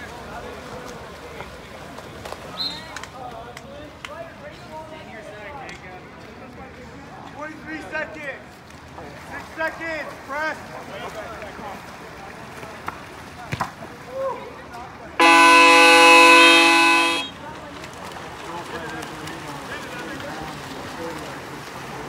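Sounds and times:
game horn buzzing: 15.2 - 17.4.

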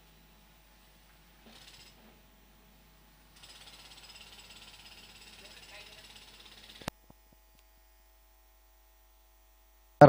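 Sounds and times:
low steady hum: 0.0 - 3.4, 6.8 - 10.0.

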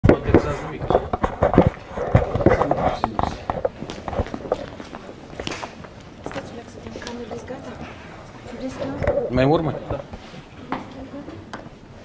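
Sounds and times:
hard-soled footsteps on tiles: 0.1 - 11.8
low background chatter: 6.2 - 11.8.

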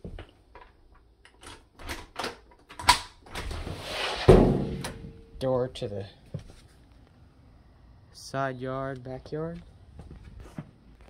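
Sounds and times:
heavy door thump: 4.2 - 5.2.

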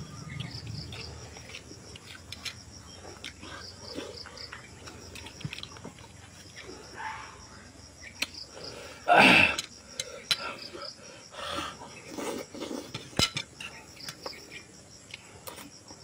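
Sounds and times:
man eating with wet mouth noises: 0.0 - 7.0, 11.6 - 15.7
insect chorus: 0.0 - 16.0.

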